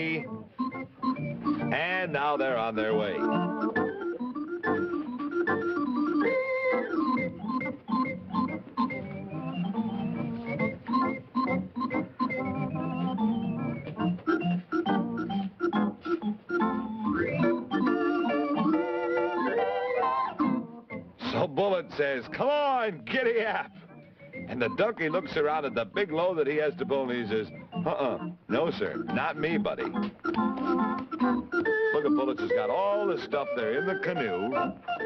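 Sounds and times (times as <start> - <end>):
bouncy organ music: 0.0 - 35.0.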